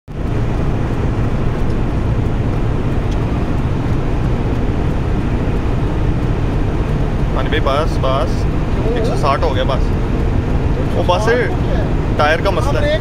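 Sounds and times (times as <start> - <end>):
engine and tyre rumble: 0.1 - 13.0
rushing wind noise: 0.1 - 13.0.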